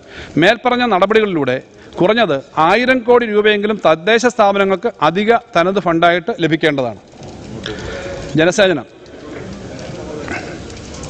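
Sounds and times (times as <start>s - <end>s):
low background noise: 0.0s - 11.0s
man's voice on microphone: 0.3s - 7.1s, 7.7s - 8.9s.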